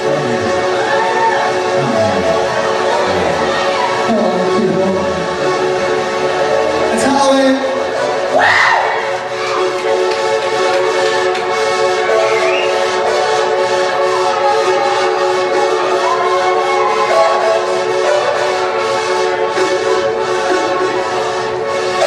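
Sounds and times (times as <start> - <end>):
droning chord: 0.0 - 8.4
gliding lead notes: 0.0 - 22.0.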